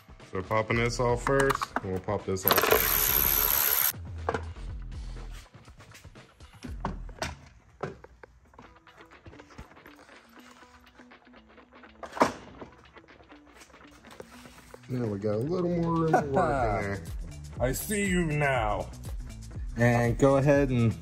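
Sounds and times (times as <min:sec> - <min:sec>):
quiet background music: 0:00.0 - 0:21.0.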